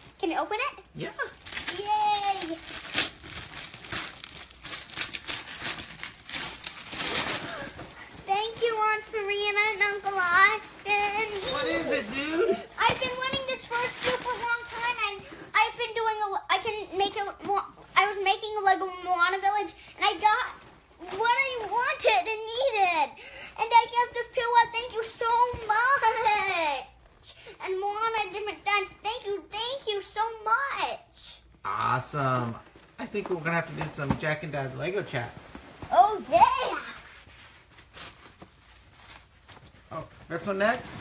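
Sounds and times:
boy talking: 0.2 - 2.6, 7.2 - 32.3, 35.9 - 37.0.

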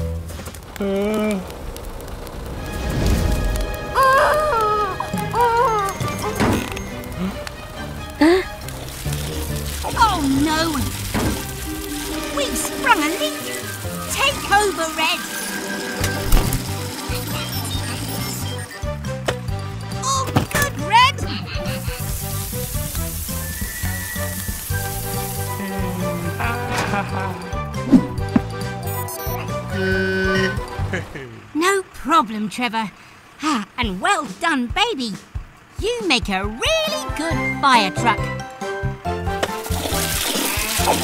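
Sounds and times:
cartoon background music: 2.8 - 31.3, 33.8 - 41.0
fire hose water spray hiss: 7.2 - 17.6, 21.6 - 27.0, 39.6 - 41.0.

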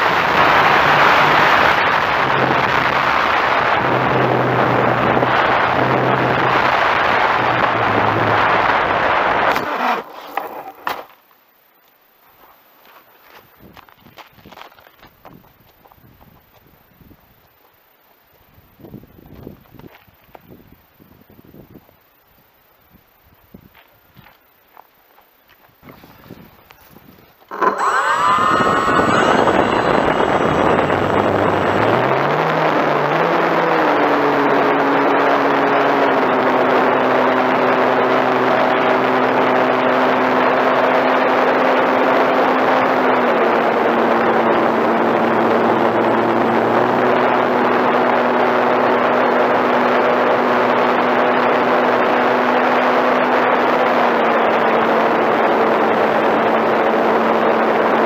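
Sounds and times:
model airplane motor and propeller: 27.5 - 58.0.

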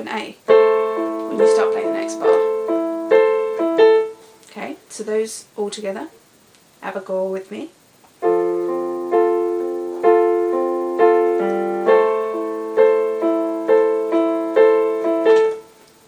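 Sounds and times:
piano playing slow chords: 0.4 - 4.4, 8.2 - 16.0.

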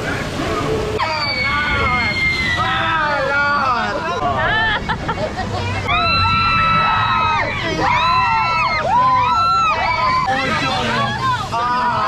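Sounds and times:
people screaming and whooping: 0.1 - 12.0.

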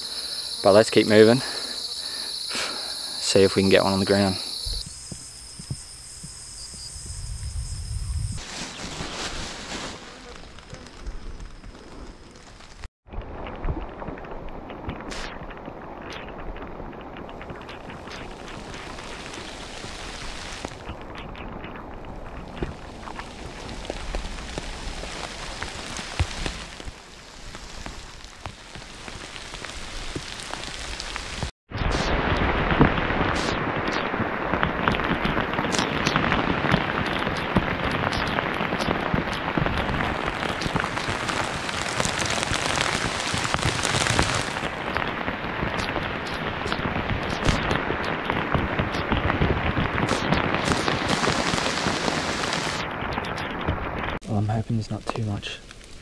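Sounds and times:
pouring rain on bushes: 0.0 - 4.8, 9.0 - 31.5, 32.2 - 56.0
raindrops striking close: 10.6 - 31.5, 32.2 - 56.0.

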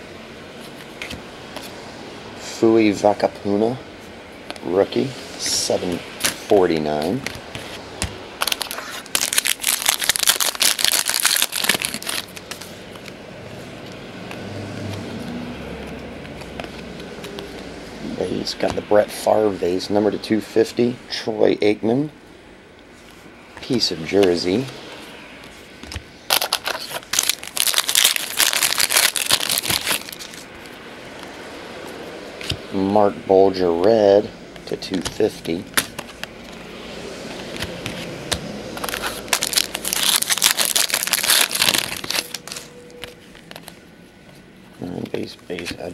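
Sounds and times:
foil wrapper tearing and crinkling: 8.4 - 12.7, 26.3 - 30.5, 38.8 - 42.7.

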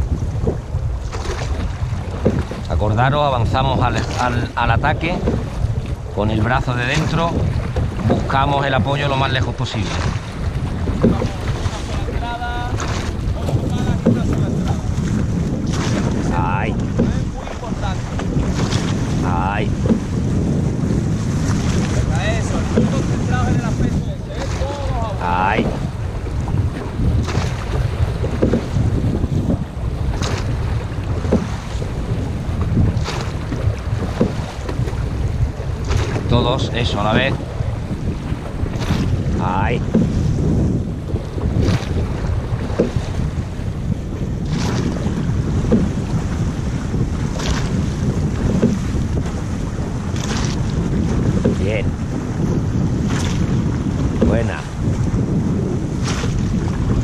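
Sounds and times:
oars knocking: 0.0 - 57.0
water rushing along hull: 0.0 - 57.0
wind buffeting microphone: 0.0 - 57.0.

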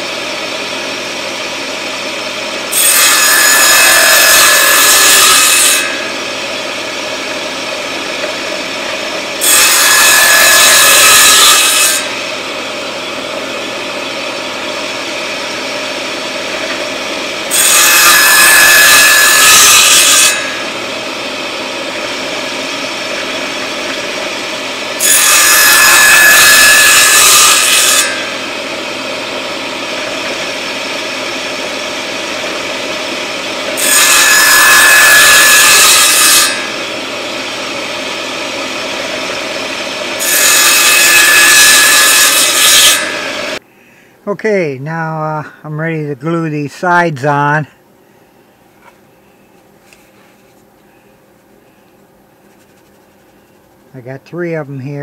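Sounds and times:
table saw cutting wood: 0.0 - 43.6.

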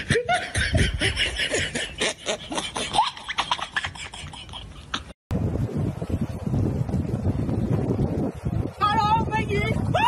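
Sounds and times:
people laughing: 0.0 - 4.9.

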